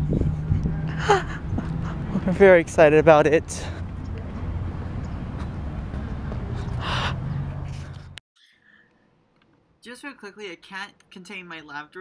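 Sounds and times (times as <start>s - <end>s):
wind and handling noise: 3.8s - 8.2s
breathy sigh: 6.8s - 7.2s.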